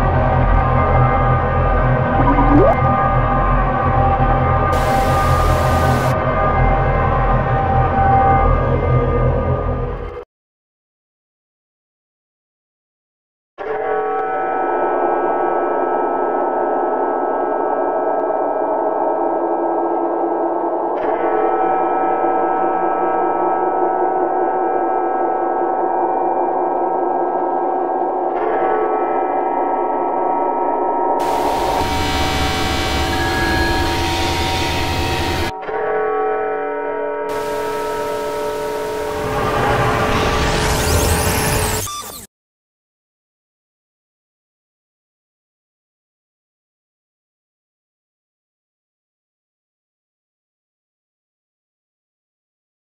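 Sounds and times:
drone of steady tones: 0:04.8 - 0:06.2, 0:31.2 - 0:35.5, 0:37.3 - 0:40.0
harsh static hissing: 0:04.8 - 0:06.2, 0:31.2 - 0:34.0, 0:37.3 - 0:39.7
drone of overlapping tones: 0:37.3 - 0:40.6.

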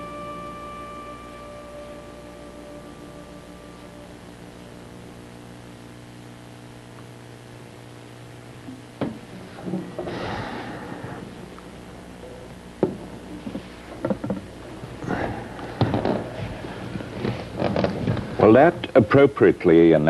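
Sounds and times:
low mains hum: 0:00.0 - 0:20.0
shuffling and rustling: 0:13.2 - 0:18.6.

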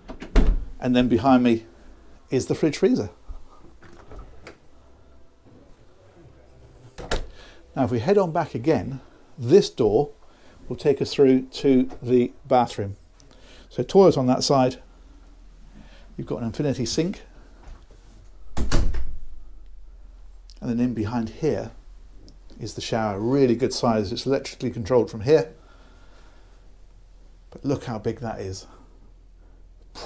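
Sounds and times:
faint low hum: 0:00.0 - 0:30.0.

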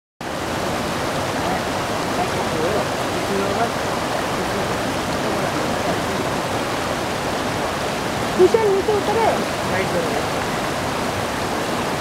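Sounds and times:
river rushing over stones: 0:00.2 - 0:12.0.

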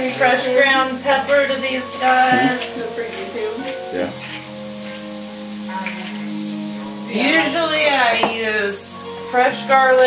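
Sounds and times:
food sizzling in a skillet: 0:00.0 - 0:10.0.

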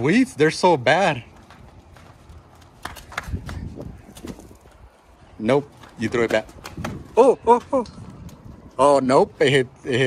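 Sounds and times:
running footsteps on paving: 0:00.0 - 0:08.9
low wind rumble: 0:00.0 - 0:10.0.

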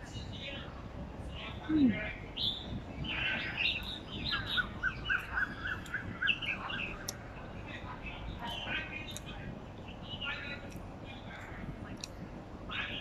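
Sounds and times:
birds chirping and calling: 0:00.0 - 0:13.0
quick evenly spaced bird notes: 0:02.2 - 0:10.8.

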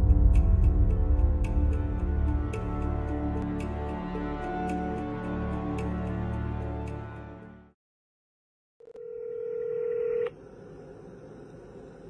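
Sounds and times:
telephone ringing tone: 0:08.8 - 0:10.4.

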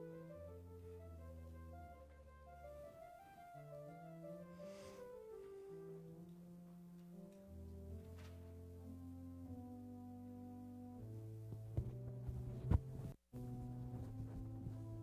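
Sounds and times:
church organ playing chords: 0:00.0 - 0:11.6.

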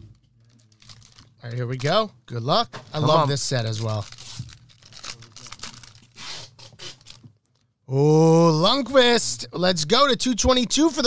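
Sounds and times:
foil wrapper tearing and crinkling: 0:00.5 - 0:01.3, 0:03.6 - 0:07.2.

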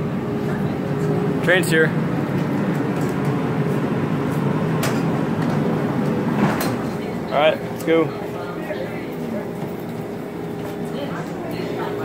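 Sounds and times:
train wheels and motors rumbling: 0:00.0 - 0:12.0.

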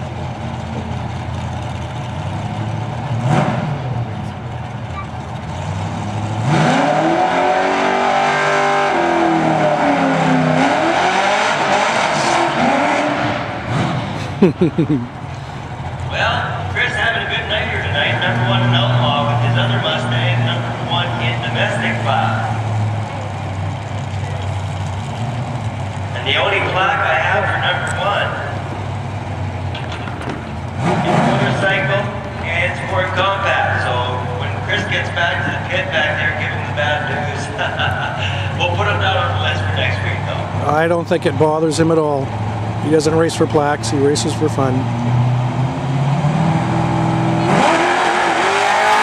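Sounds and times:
car engine revving: 0:00.0 - 0:49.0.

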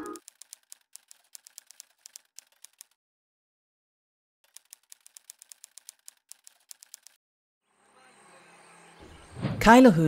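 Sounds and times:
rapid keyboard typing clicks: 0:00.1 - 0:03.0, 0:04.5 - 0:07.2.

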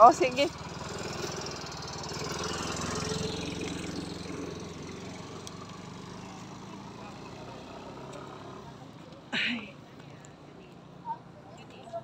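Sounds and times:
small engine running: 0:00.1 - 0:08.7.

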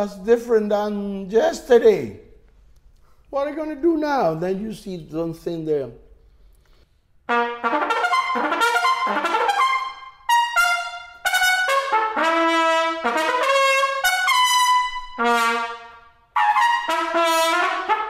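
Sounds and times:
solo trumpet playing: 0:07.2 - 0:18.0.

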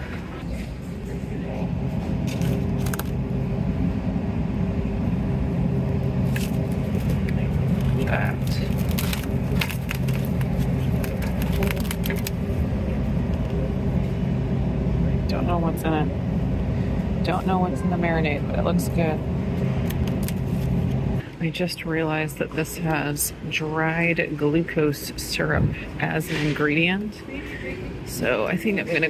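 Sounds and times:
low rumble and hum: 0:00.0 - 0:29.0
meat packages handled: 0:07.8 - 0:12.4.

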